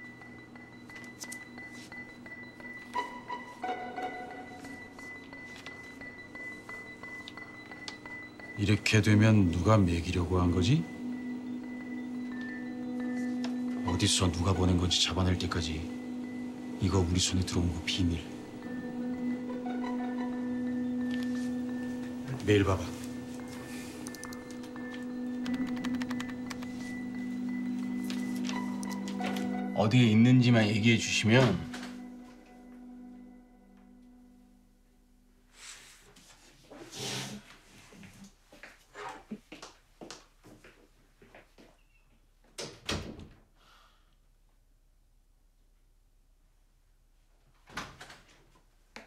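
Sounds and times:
low sustained note: 26.4 - 35.1.

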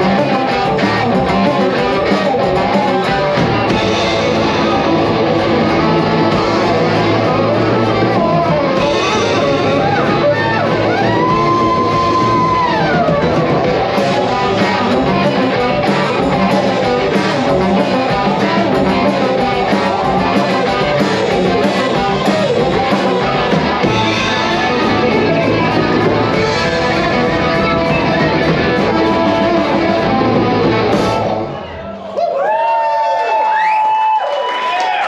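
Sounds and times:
drum kit: 0.0 - 31.8
electric guitars: 0.0 - 32.0
bass guitar: 0.0 - 32.1.

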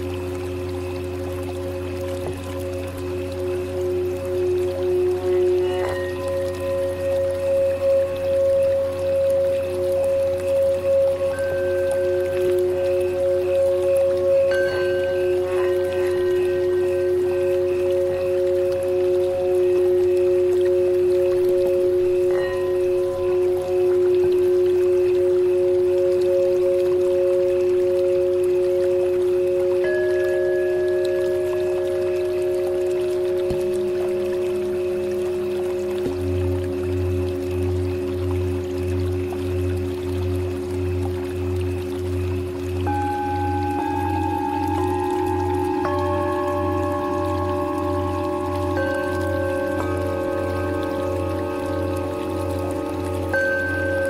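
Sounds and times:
low pulsing hum: 0.0 - 54.0
singing bowls ringing: 0.0 - 54.0.

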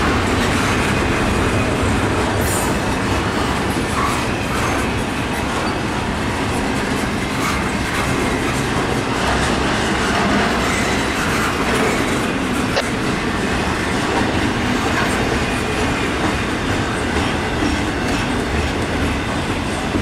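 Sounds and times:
steel wheels rumbling on rail: 0.0 - 20.0.

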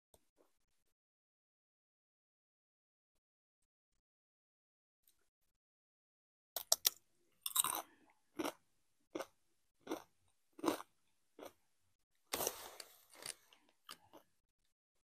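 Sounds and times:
crunching chip bites: 6.6 - 7.8
chewing: 12.4 - 14.3.

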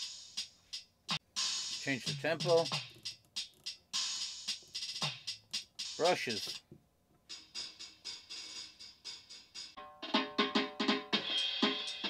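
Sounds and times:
drum machine beat through amp: 0.0 - 6.6, 7.3 - 12.0.

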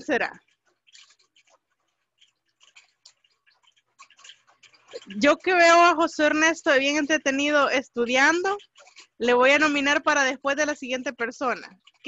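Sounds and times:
faint irregular clicks: 0.0 - 12.0.

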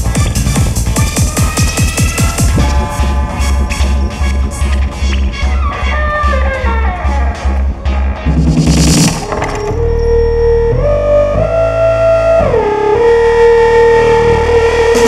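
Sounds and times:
pounding kick and bass: 0.0 - 11.5, 12.4 - 15.0
synth lead sliding in pitch: 1.2 - 8.4, 9.0 - 15.0
rising noise swell: 1.8 - 8.0.

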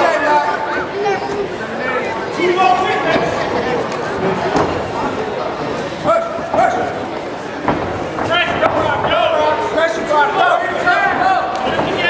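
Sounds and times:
spectator chatter in hall: 0.0 - 12.0.

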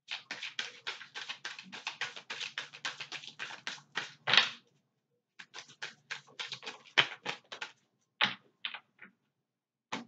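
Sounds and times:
cards being shuffled: 0.1 - 4.3, 5.4 - 7.8.

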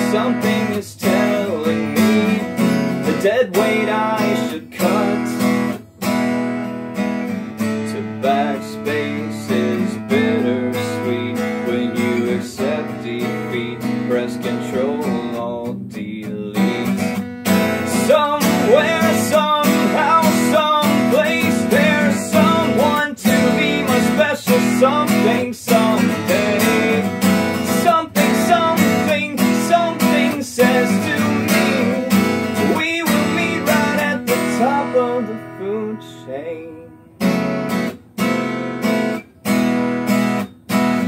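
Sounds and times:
strummed acoustic guitar: 0.0 - 41.0.

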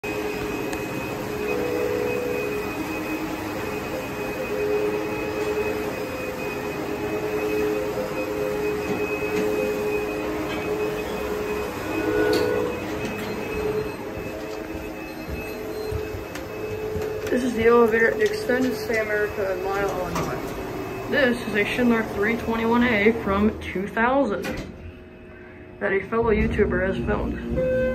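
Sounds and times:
elevator doors rattling: 0.0 - 24.9, 25.9 - 27.9
elevator mechanical hum: 0.0 - 27.9.

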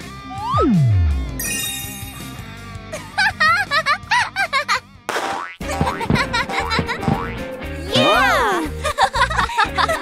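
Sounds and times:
cartoon downward sweep effect: 0.3 - 1.2.

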